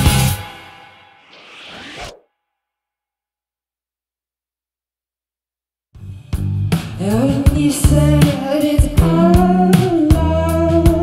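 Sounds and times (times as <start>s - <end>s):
scraping swish: 1.2s - 2.3s.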